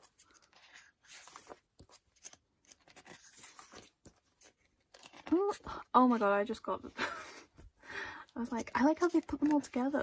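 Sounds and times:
page turning paper rustle: 0.0 - 6.2, 8.9 - 10.0.

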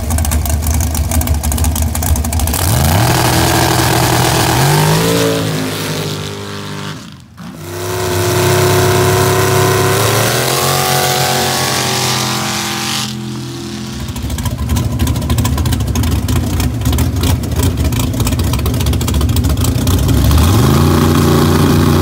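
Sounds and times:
racing engine revving and idling: 0.0 - 22.0.

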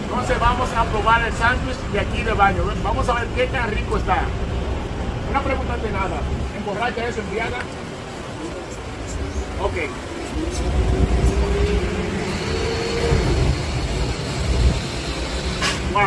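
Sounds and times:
vehicle engine rumbling past: 9.2 - 16.0.

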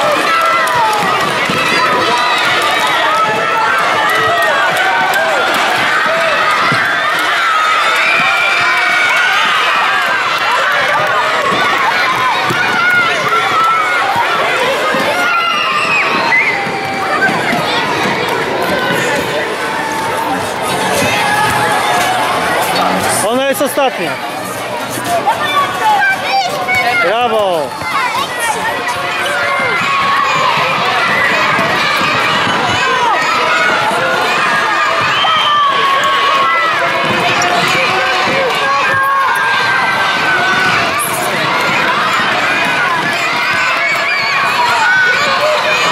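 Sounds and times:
children shouting and cheering: 0.0 - 45.9
footsteps on wooden court: 10.3 - 22.2.

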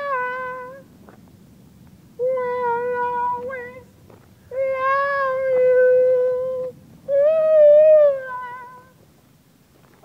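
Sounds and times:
person singing a long high note: 0.0 - 0.8, 2.2 - 3.9, 4.5 - 9.0.

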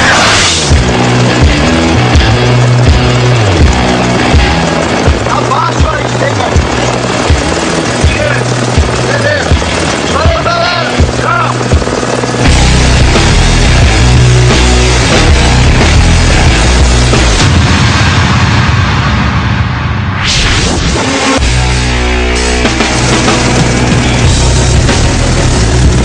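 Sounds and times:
short whoosh: 0.0 - 0.7, 17.6 - 21.6
background music with steady beat: 0.6 - 17.8.

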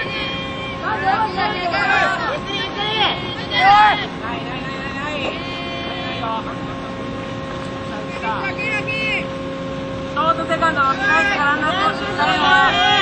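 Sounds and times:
drawn-out cries: 0.0 - 6.6, 10.8 - 13.0
people shouting and calling out: 0.0 - 6.6, 10.4 - 13.0
steady hum: 0.0 - 13.0.

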